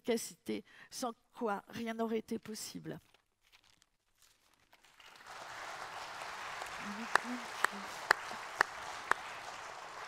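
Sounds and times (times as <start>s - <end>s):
audience applauding: 4.9s - 10.0s
loud close claps: 5.0s - 10.0s.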